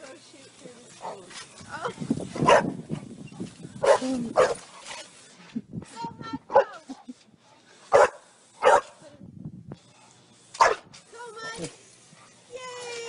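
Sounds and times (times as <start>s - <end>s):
dog barking: 2.4s - 2.8s, 3.8s - 4.6s, 7.9s - 8.9s, 10.6s - 10.8s.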